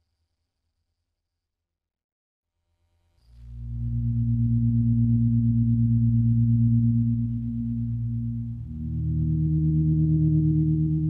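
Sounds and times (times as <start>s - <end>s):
ambient electronic drone: 3.7s - 11.0s.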